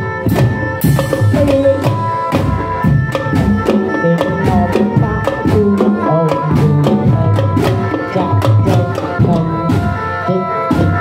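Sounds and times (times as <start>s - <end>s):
quick steady drumbeat: 0.0s - 10.0s.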